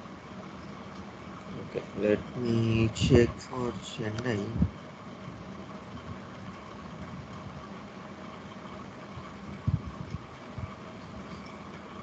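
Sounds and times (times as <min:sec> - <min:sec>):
machine-like hum: 0:00.0 - 0:12.0.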